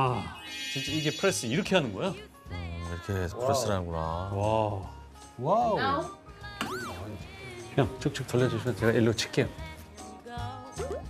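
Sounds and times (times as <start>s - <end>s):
background music: 0.0s - 11.0s
comic pitch glide effect: 0.4s - 1.5s
short held tone: 0.4s - 1.5s.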